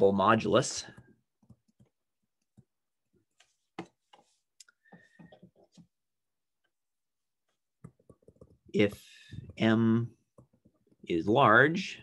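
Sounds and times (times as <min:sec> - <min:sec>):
stylus tapping on tablet screen: 0:07.5 - 0:11.0.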